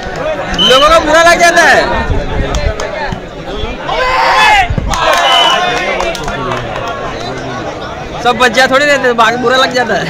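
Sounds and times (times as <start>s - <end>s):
crowd shouting and cheering: 0.0s - 8.9s.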